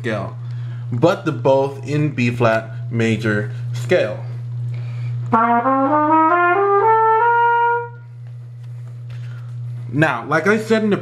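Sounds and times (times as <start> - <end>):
steady low hum: 0.0 - 11.0
brass instrument playing a scale: 5.3 - 8.1.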